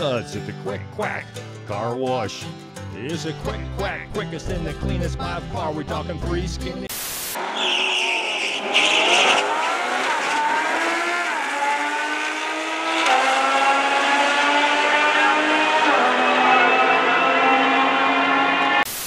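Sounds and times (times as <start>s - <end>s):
static hiss burst: 6.9s - 7.4s
car engines revving through gears: 7.4s - 18.9s.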